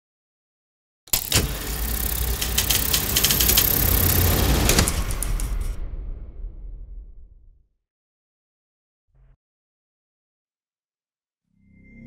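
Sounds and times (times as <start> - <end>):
scattered clicks: 1.1 - 5.8.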